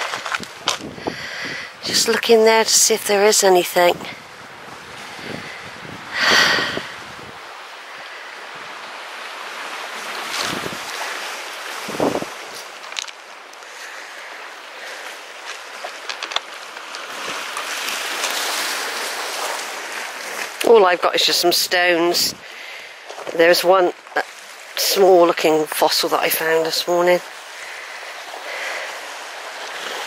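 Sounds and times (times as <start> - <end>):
wind on microphone: 0.0 - 2.6, 3.8 - 7.5, 10.2 - 12.6
surf washing on pebble shore: 0.0 - 30.0
stones clicking: 12.8 - 13.2, 15.5 - 18.4.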